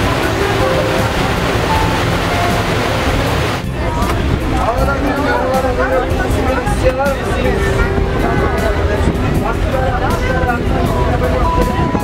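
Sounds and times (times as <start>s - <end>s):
churning wake water: 0.0s - 12.0s
ferry engine rumbling: 0.0s - 12.0s.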